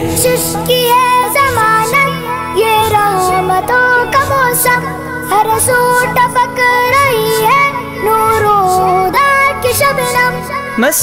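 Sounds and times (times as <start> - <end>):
child singing: 0.0 - 11.0.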